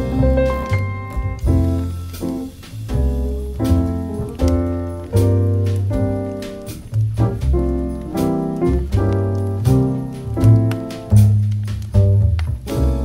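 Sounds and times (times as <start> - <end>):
low bass line: 0.0 - 13.0
piano chords: 0.0 - 13.0.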